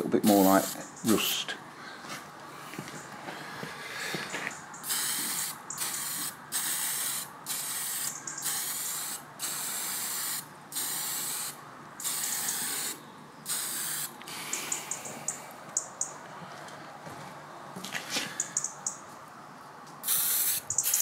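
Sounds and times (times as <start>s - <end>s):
spray paint can hissing: 0.4s - 0.8s, 4.8s - 14.9s, 20.0s - 21.0s.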